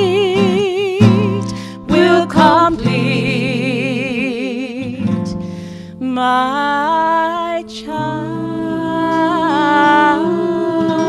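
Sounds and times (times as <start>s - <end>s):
soft acoustic guitar: 0.0s - 11.0s
women singing held notes: 1.8s - 4.4s, 7.6s - 11.0s.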